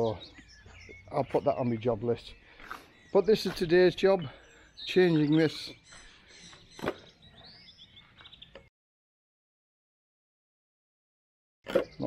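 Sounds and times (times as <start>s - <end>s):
bird chirping faintly: 0.0s - 8.7s.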